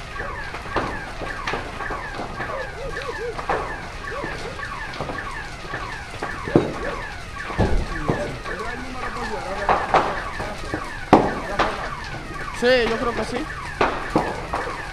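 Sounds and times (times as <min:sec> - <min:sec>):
car alarm chirps and whoops: 0:00.0 - 0:14.9
fire burning: 0:00.0 - 0:14.9
sharp pops: 0:00.0 - 0:14.9.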